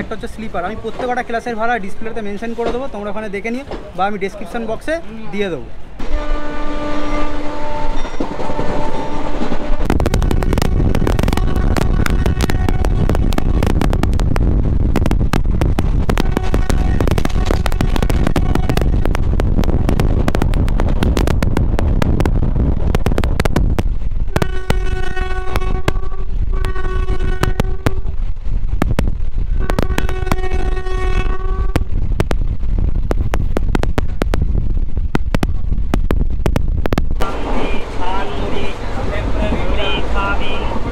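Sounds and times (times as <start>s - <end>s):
train rushing wind and wheels: 0.0s - 40.9s
train horn blasts: 6.0s - 14.1s, 16.2s - 19.2s, 24.3s - 28.2s, 29.6s - 31.9s.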